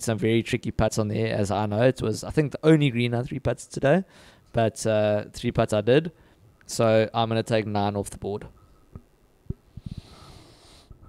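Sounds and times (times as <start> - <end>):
person breathing in: 4.1 - 4.4, 9.7 - 10.9.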